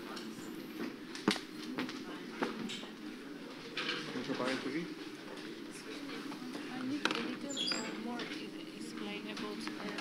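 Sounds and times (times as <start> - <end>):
indistinct chatter of people: 0.0 - 10.0.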